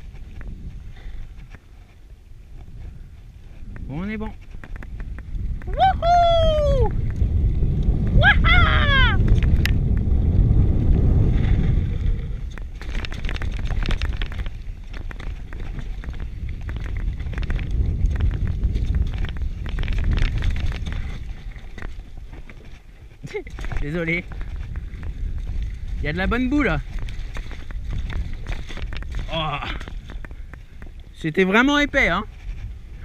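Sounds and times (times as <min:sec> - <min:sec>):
wind buffeting microphone: 0:00.0 - 0:33.0
tyres rolling on dirt: 0:07.1 - 0:32.7
bike rattling over rocks: 0:09.2 - 0:33.0.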